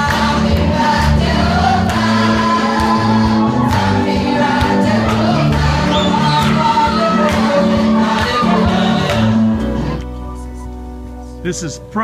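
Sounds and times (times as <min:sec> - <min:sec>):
choir singing gospel: 0:00.0 - 0:10.5.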